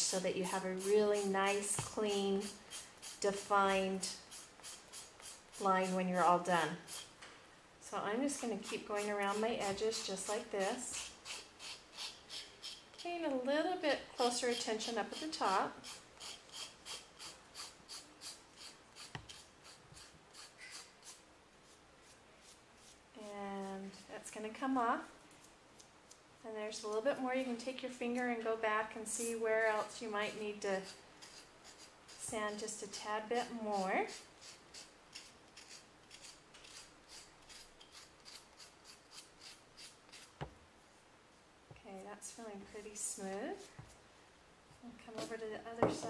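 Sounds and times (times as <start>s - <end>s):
nail file rasping on paper: 0.1s - 6.0s, 6.8s - 7.1s, 8.4s - 13.1s, 14.2s - 23.0s, 30.7s - 32.3s, 33.4s - 40.4s.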